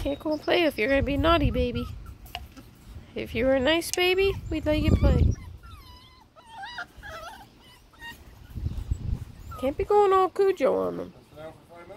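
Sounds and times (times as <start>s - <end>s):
puppy whimpering: 0.0s - 2.6s, 4.1s - 11.0s.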